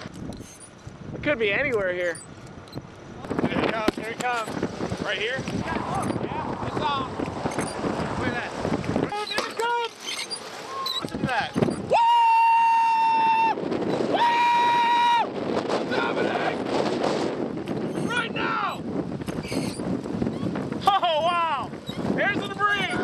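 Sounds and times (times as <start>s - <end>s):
excited voices: 5.6s - 7.2s, 10.7s - 15.3s.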